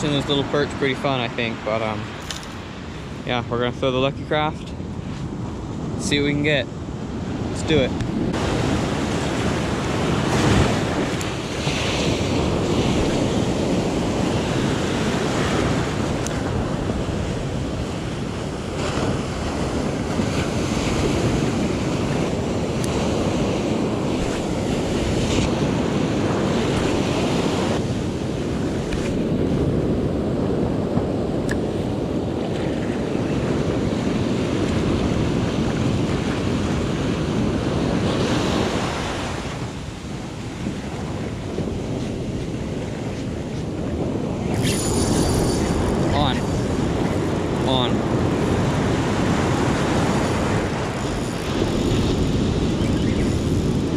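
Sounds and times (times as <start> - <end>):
ocean surf breaking: 0.0 - 53.9.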